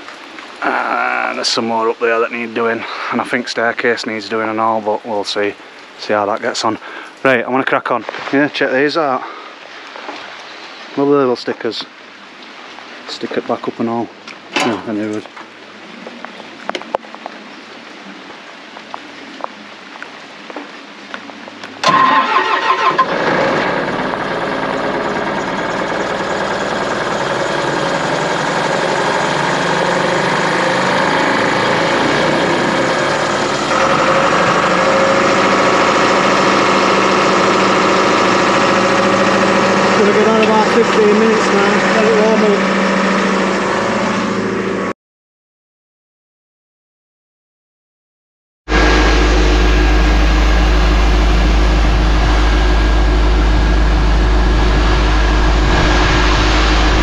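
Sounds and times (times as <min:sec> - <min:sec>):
diesel engine starting and running: 0:21.8 - 0:45.0, 0:48.7 - 0:57.0.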